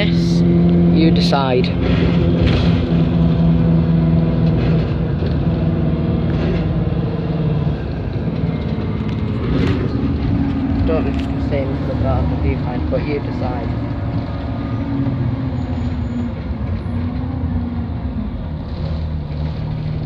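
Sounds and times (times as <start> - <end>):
bus engine rumble inside cabin: 0.0 - 20.0.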